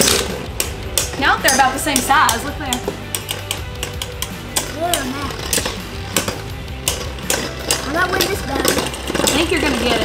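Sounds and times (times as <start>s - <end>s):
spinning tops clacking together: 0.0s - 10.0s
spinning tops whirring: 0.0s - 10.0s.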